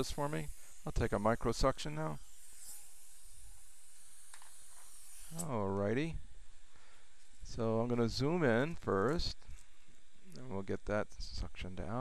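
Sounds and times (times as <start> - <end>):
dental suction hissing: 0.0 - 5.5.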